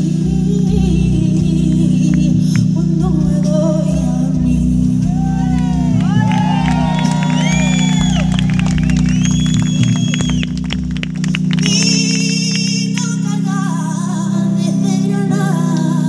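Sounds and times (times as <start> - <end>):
live concert music through pa: 0.0 - 16.0.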